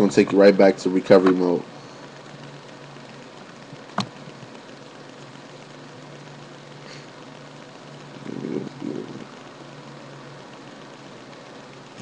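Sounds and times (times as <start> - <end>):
faint low hum: 0.0 - 12.0
sharp click: 3.9 - 5.2.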